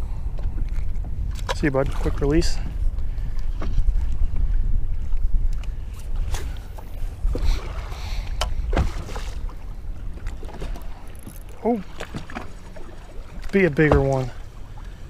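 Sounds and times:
choppy water: 0.0s - 15.0s
wind buffeting microphone: 0.0s - 15.0s.

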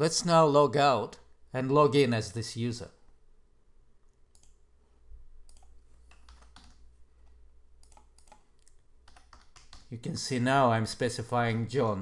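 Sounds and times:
computer keyboard keystrokes: 5.5s - 6.8s, 7.8s - 9.9s.

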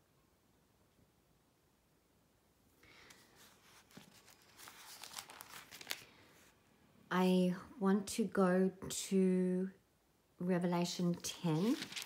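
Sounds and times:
thin pages being turned: 3.0s - 6.5s, 11.2s - 12.0s.

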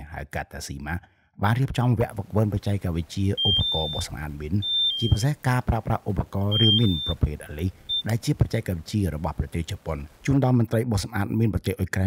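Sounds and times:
man speaking: 0.0s - 12.0s
electronic alert beeps: 3.4s - 5.3s, 6.5s - 7.2s, 7.9s - 8.2s.

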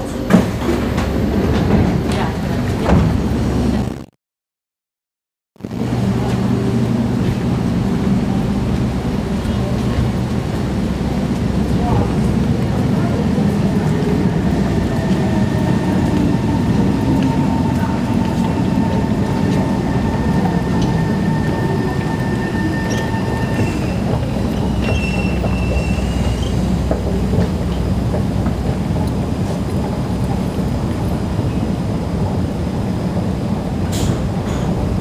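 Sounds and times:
train low rumble: 0.0s - 4.1s, 5.6s - 35.0s.

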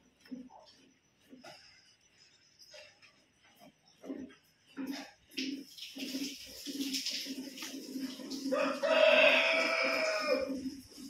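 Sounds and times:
milk squirting into metal pail: 4.8s - 11.0s
rooster crowing: 8.5s - 10.8s.

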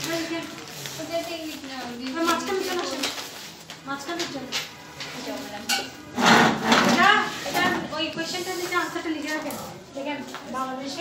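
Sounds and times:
scrapes: 6.1s - 7.4s.

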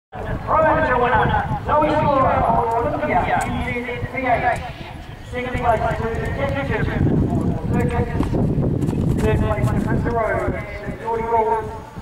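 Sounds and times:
announcer speaking over loudspeaker: 0.2s - 8.2s, 9.3s - 11.8s
horse hooves thudding on grass: 5.5s - 11.0s.

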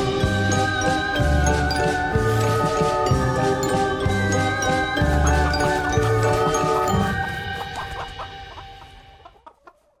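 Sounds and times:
jingly music: 0.0s - 9.2s
chickens clucking: 4.3s - 10.0s.

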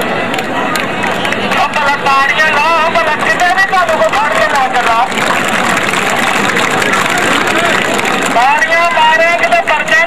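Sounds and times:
large crowd noise: 0.0s - 10.0s.

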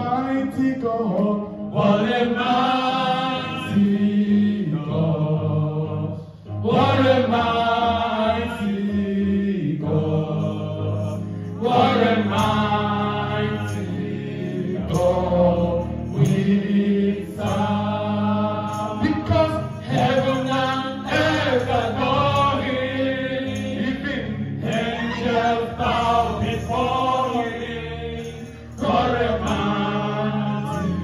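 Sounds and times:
low musical accompaniment: 0.0s - 31.0s
women singing gospel song: 11.1s - 18.8s, 19.8s - 24.0s, 24.6s - 31.0s.

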